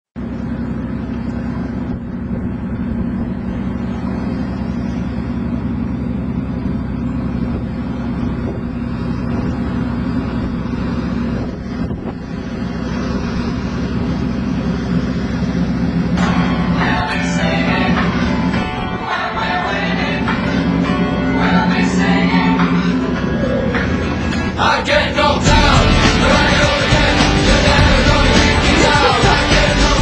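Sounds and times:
boat engine droning: 0.2s - 30.0s.

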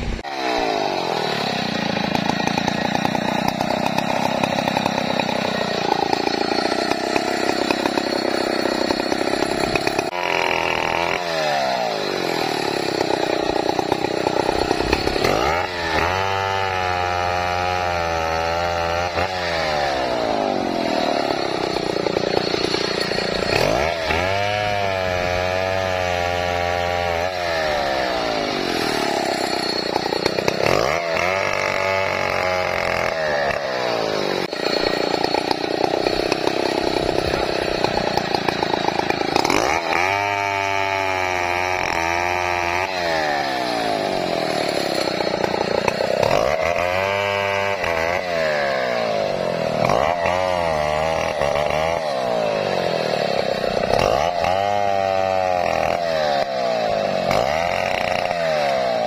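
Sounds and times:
chainsaw cutting wood: 0.0s - 59.0s.

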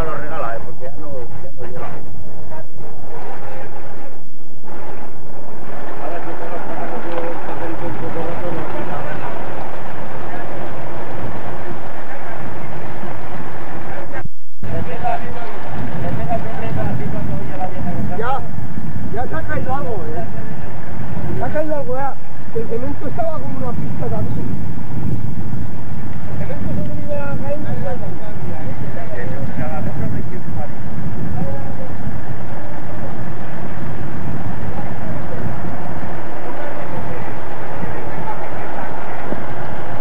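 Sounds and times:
indistinct voices talking: 0.0s - 40.0s
loud low rumble: 0.0s - 40.0s
wind buffeting microphone: 0.0s - 40.0s.

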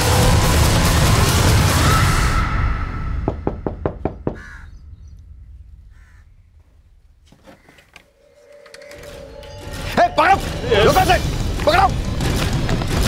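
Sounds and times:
background music: 0.0s - 4.3s, 8.2s - 13.0s
sharp knocks: 3.2s - 4.7s.

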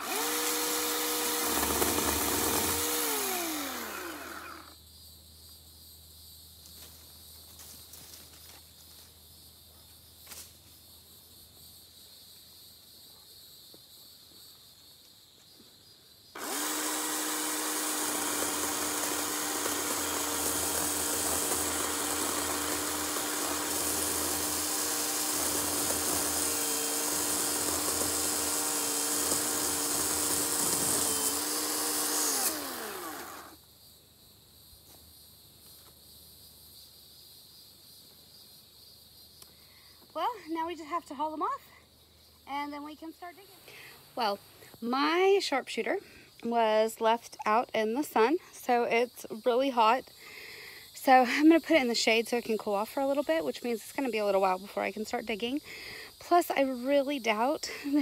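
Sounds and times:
electric chainsaw motor: 0.0s - 4.8s, 16.4s - 33.6s.

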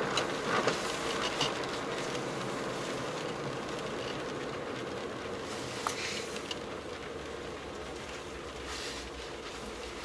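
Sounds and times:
car engine cruising: 0.0s - 10.0s
tyres on road: 0.0s - 10.0s.

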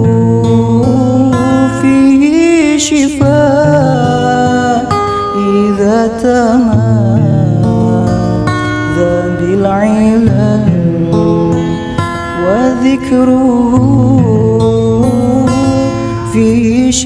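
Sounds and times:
acoustic guitar: 0.0s - 17.0s.

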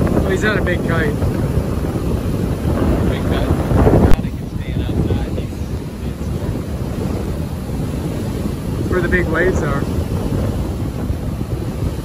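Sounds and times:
heavy surf breaking: 0.0s - 12.0s
wind buffeting microphone: 0.0s - 12.0s.

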